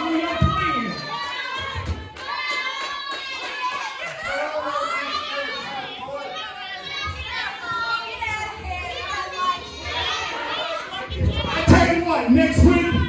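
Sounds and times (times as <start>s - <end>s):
crowd chattering and calling out: 0.0s - 13.0s
children's voices: 0.1s - 13.0s.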